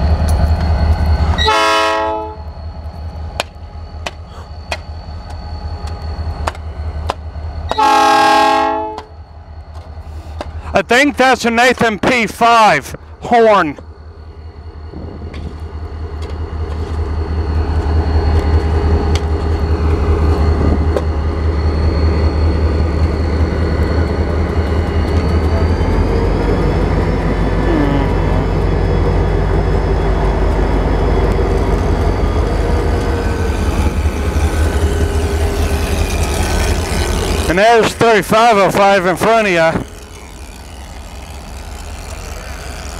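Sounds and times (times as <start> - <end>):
locomotive engines rumbling: 0.0 - 42.9
thin high whine: 2.2 - 8.0, 8.8 - 42.9.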